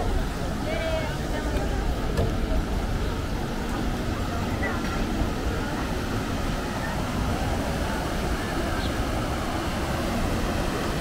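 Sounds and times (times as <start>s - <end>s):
faint voices of passers-by: 0.0s - 11.0s
low outdoor rumble: 0.0s - 11.0s.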